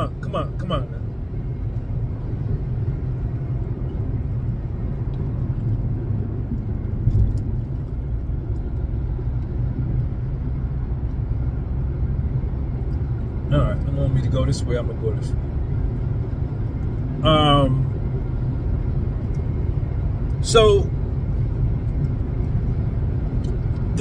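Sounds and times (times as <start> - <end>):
car road and engine noise: 0.0 - 24.0.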